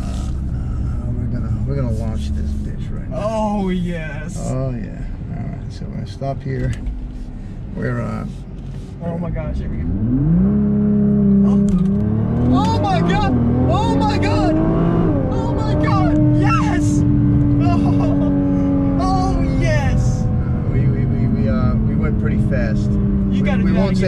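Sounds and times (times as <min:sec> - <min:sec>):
car engine at full throttle: 0:00.0 - 0:24.0.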